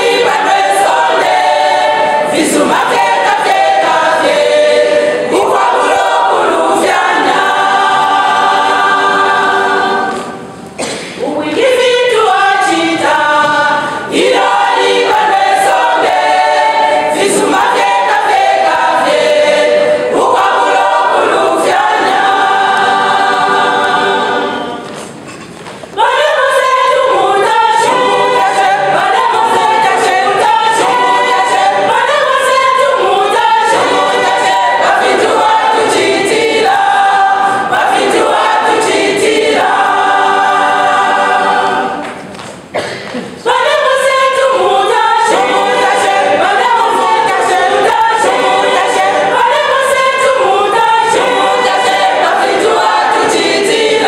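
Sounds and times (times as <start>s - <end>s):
women's choir singing gospel: 0.0s - 54.0s.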